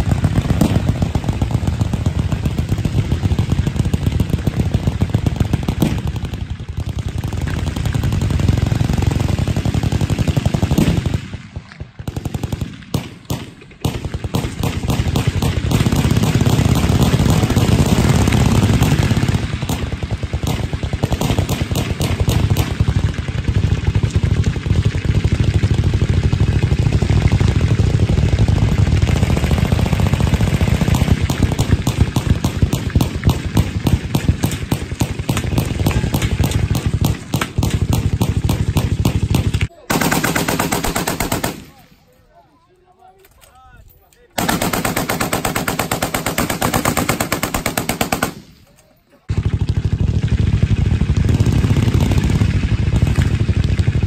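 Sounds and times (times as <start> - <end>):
machine guns firing: 0.0 - 42.2, 44.3 - 54.0.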